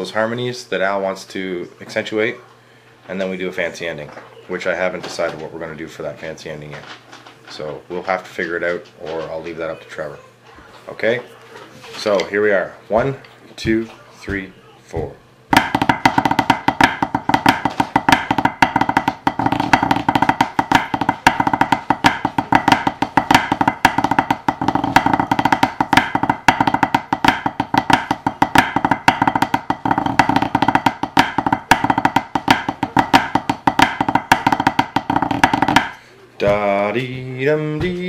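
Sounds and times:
drumsticks on practice pad: 12.9 - 38.0.

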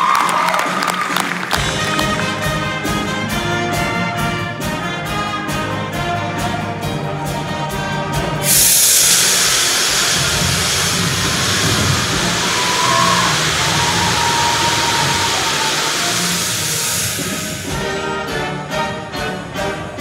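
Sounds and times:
band music: 0.0 - 20.0
gas jets hissing: 8.3 - 19.6.

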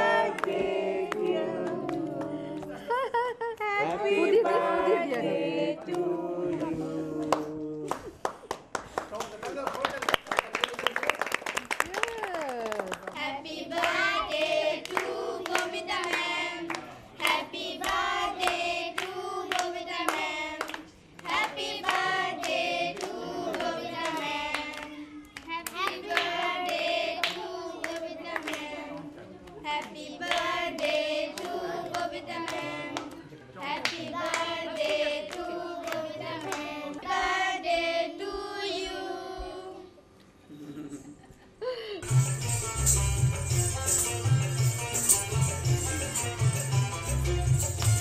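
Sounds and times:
group singing: 0.0 - 3.0, 3.6 - 7.9, 13.2 - 40.0
hand clapping in time: 7.2 - 13.2, 47.4 - 48.0
hand claps: 7.2 - 13.2, 13.8 - 33.2, 47.4 - 48.0.

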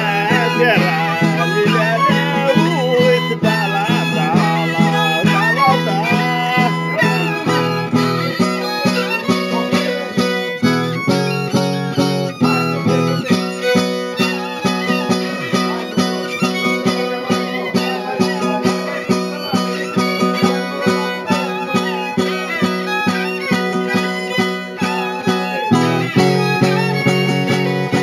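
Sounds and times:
fiddle playing high melody: 0.0 - 28.0
strummed guitar dance rhythm: 0.0 - 28.0.

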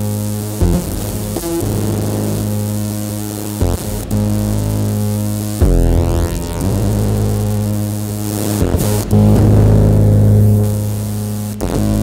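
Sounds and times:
synthesized electronic drone: 0.0 - 12.0.

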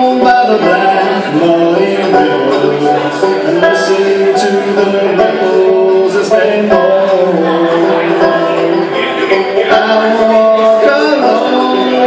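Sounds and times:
banjo picking a slow melody: 0.0 - 12.0.

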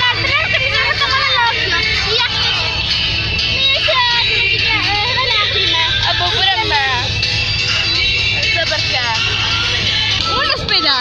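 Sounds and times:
music: 0.0 - 11.0
vehicle rumble from inside cabin: 0.0 - 11.0.

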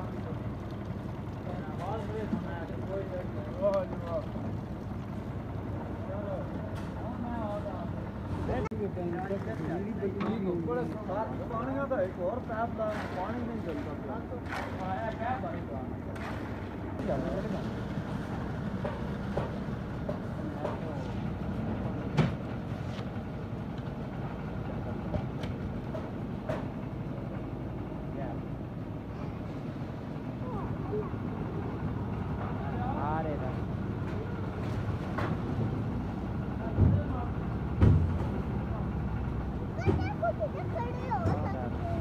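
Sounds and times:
concrete mixer engine running: 0.0 - 42.0.

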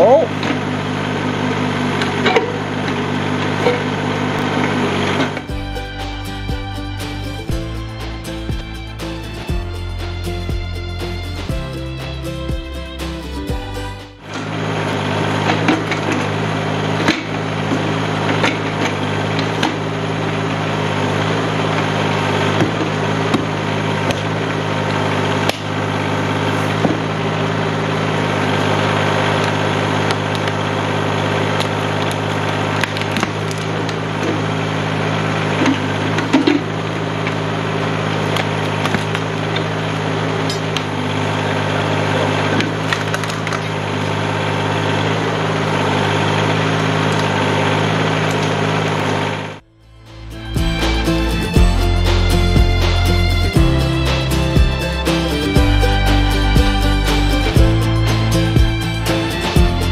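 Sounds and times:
tractor engine running: 0.0 - 59.9.

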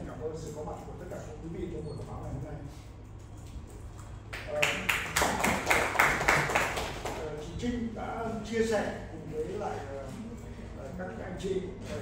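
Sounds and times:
audience clapping: 4.3 - 7.2.

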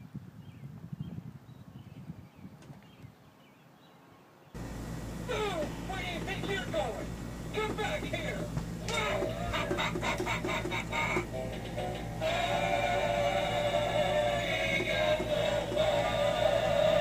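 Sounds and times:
steady low hum: 4.6 - 17.0
synthesized singing voice with beat: 12.2 - 17.0.

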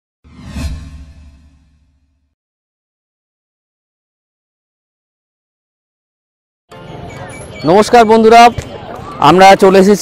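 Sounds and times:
whoosh sound effect: 0.2 - 2.3.

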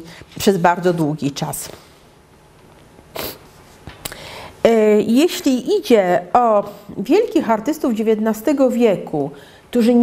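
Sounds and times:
short sniff: 3.1 - 4.5.

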